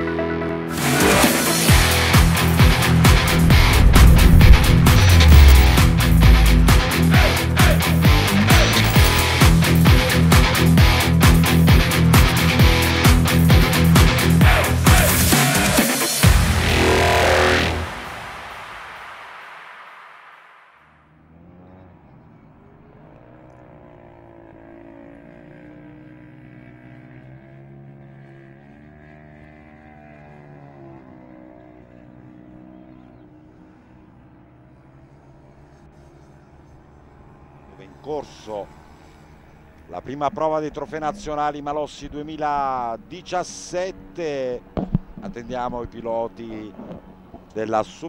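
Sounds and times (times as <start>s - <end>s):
heavy rock music: 0.0s - 18.6s
distant engines running: 1.4s - 19.3s, 21.0s - 48.0s.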